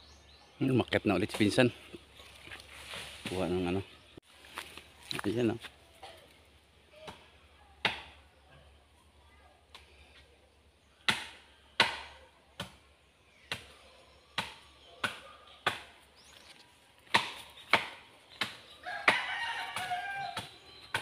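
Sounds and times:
rooster crowing: 18.8 - 20.6.

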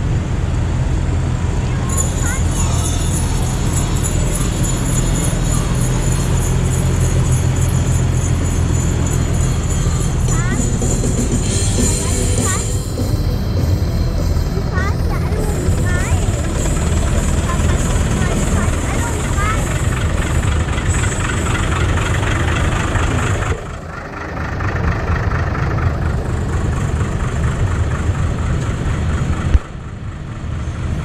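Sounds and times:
tractor engines passing: 0.0 - 31.0
voices: 1.0 - 29.4.

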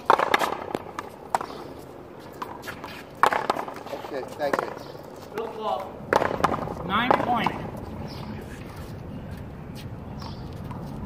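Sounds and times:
ball hitting wall: 0.0 - 1.5, 3.2 - 3.8, 6.1 - 7.6
paddles hitting rubber ball: 0.0 - 8.2.

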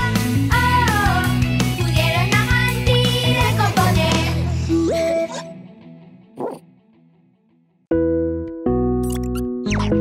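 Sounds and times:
children's song: 0.0 - 5.1
cartoon dog bark: 6.4 - 6.7.

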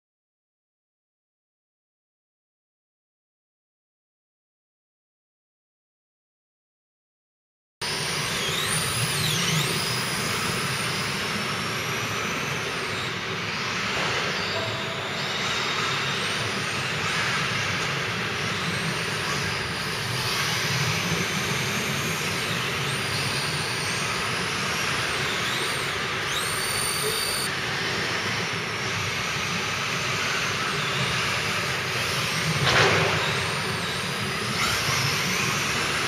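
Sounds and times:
rc car motor whines: 7.8 - 36.0.

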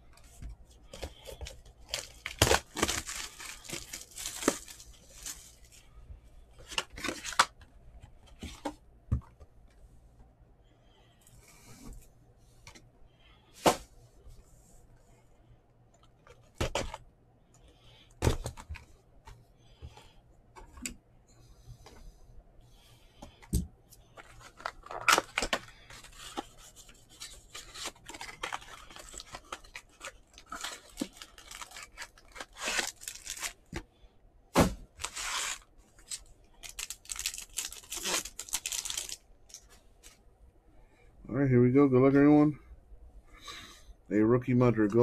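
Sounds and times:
cardboard rubbing and scraping: 34.6 - 35.6.

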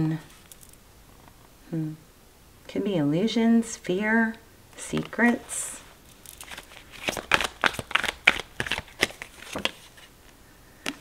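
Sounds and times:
cards being shuffled: 6.0 - 10.1.

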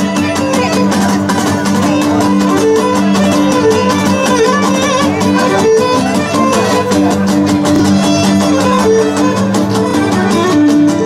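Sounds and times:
bowed lyra melody: 0.0 - 11.0
lutes strumming: 0.0 - 11.0.

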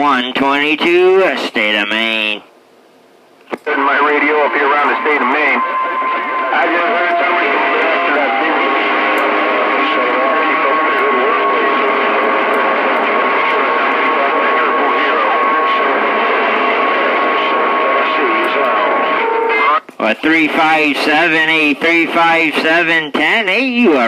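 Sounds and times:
garbled radio voices: 3.5 - 24.0
radio static: 3.5 - 24.0.

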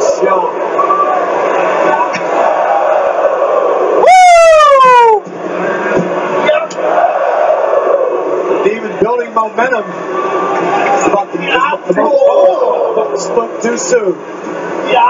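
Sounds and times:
arena crowd noise: 0.0 - 15.0.

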